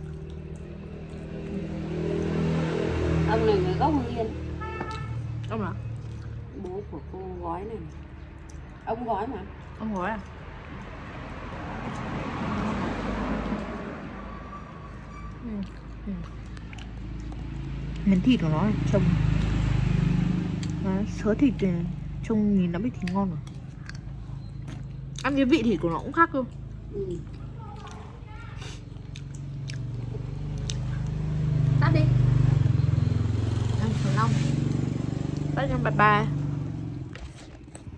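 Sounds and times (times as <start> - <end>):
road vehicle passing by: 0.0 - 37.9.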